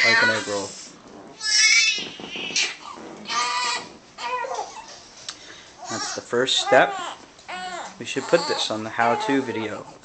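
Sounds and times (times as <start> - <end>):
newborn baby crying: 0.0 - 0.7, 1.4 - 4.9, 5.8 - 9.9.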